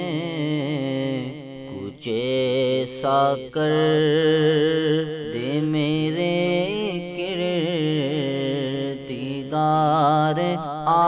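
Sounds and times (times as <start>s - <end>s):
person singing devotional song: 0.0s - 11.0s.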